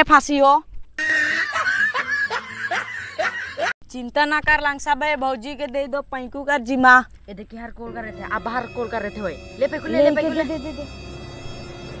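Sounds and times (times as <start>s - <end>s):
snickering laugh: 1.0s - 3.7s.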